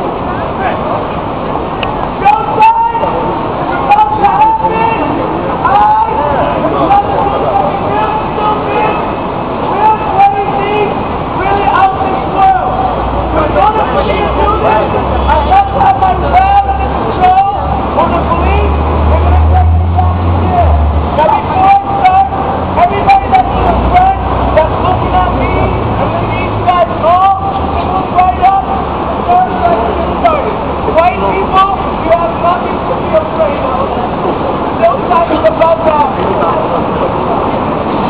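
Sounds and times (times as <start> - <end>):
heavy traffic rumble: 0.0 - 38.0.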